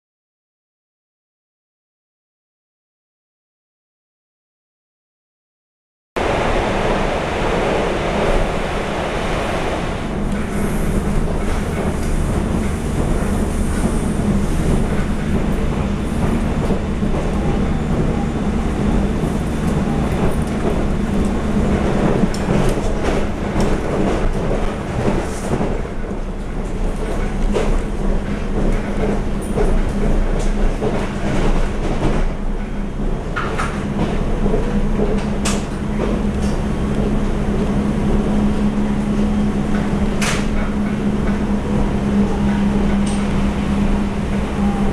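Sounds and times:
train wheels rumbling on rail: 0:06.2 - 0:44.9.

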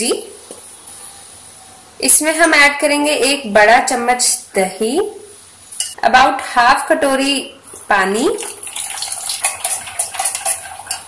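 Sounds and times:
metal spoon stirring in steel bowl: 0:08.4 - 0:11.0.

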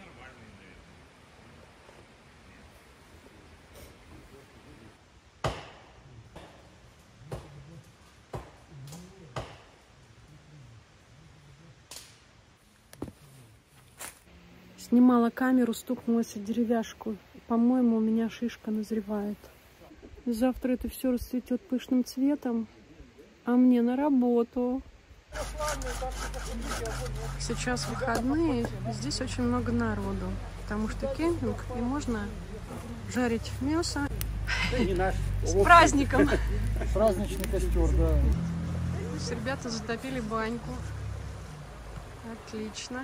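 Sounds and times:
sharp knocks: 0:05.4 - 0:06.6
people chattering: 0:25.3 - 0:43.0
hand saw rasping through wood: 0:25.4 - 0:28.1.

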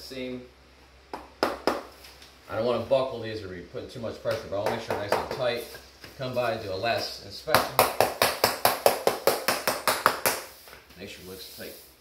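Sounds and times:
hammer tapping vinyl plank: 0:07.6 - 0:10.5.

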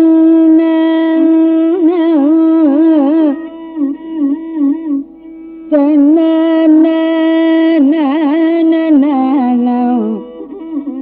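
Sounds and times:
woman singing with wavering notes: 0:00.0 - 0:11.0.

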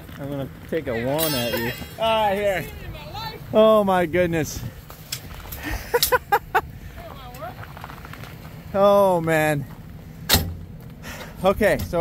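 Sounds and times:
man laughing: 0:05.6 - 0:06.7.

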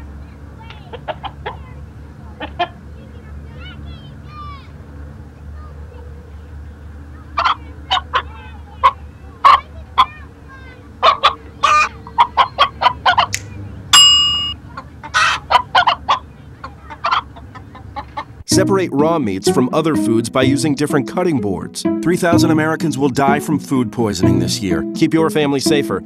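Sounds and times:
hen clucking: 0:00.7 - 0:01.7, 0:02.3 - 0:03.2, 0:07.1 - 0:18.6
music: 0:18.5 - 0:26.0
narrator speaking: 0:18.5 - 0:26.0.

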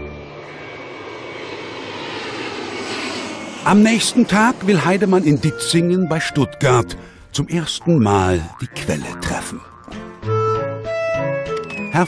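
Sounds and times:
faint high whine: 0:00.0 - 0:05.5
jet engine rushing: 0:00.0 - 0:07.0.

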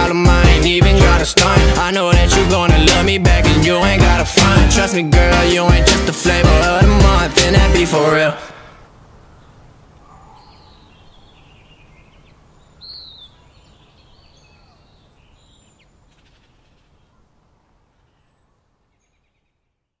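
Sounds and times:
birds chirping: 0:00.0 - 0:20.0
faint background noise: 0:08.0 - 0:20.0.

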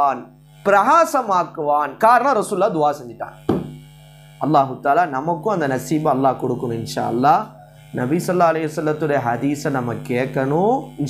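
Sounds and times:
man lecturing: 0:00.0 - 0:03.5, 0:04.4 - 0:11.0.

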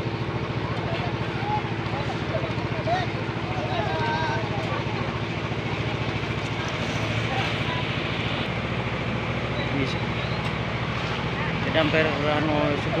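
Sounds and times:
distant people talking: 0:00.0 - 0:13.0
small engine running: 0:00.0 - 0:13.0.

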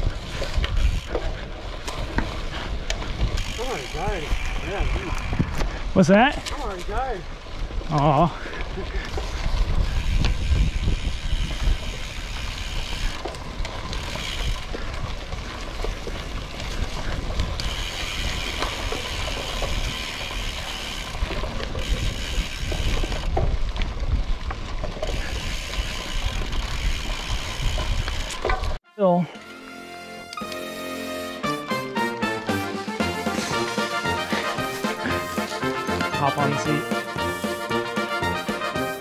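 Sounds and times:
bike tyre and trail rumble: 0:00.0 - 0:28.8, 0:32.5 - 0:39.0
music: 0:28.9 - 0:39.0.

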